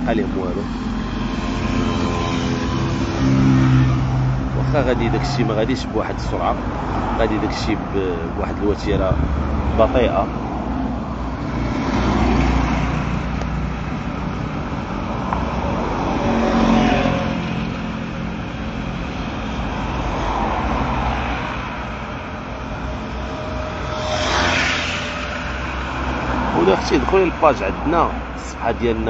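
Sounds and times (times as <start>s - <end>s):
low steady traffic rumble: 0.0s - 29.0s
vehicles passing: 0.0s - 29.0s
motorcycle passing close: 8.1s - 19.0s.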